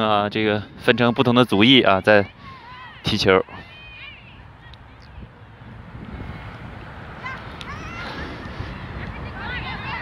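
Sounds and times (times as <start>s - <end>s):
distant players shouting: 0.9s - 5.2s, 7.2s - 10.0s
wind rumble on microphone: 4.3s - 10.0s.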